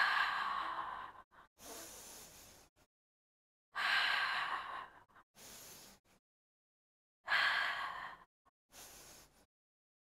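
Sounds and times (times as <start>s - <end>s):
woman breathing deliberately: 0.0s - 2.9s, 3.8s - 6.2s, 7.3s - 9.5s.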